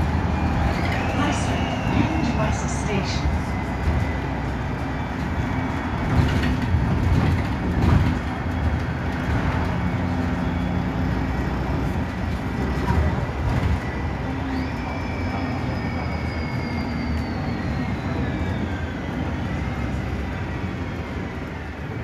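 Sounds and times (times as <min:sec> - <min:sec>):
bus bumps: 0:00.0 - 0:14.9
bus engine humming and rumbling: 0:00.0 - 0:22.0.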